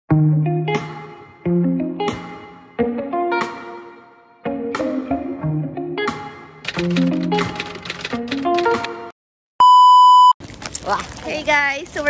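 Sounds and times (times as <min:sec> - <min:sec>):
upbeat intro music: 0:00.1 - 0:09.1
steady electronic test-tone beep: 0:09.6 - 0:10.4.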